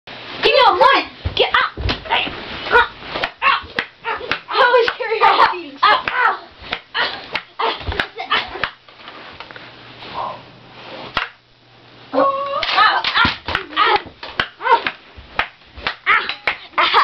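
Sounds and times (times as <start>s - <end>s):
slaps and thuds from scuffle: 1.2s - 8.8s, 12.6s - 16.5s.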